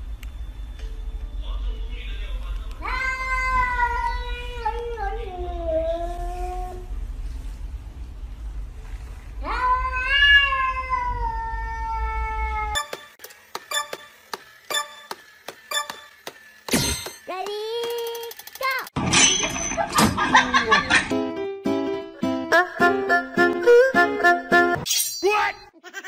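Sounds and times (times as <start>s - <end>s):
cats meowing: 2.8s - 5.4s, 9.4s - 12.8s.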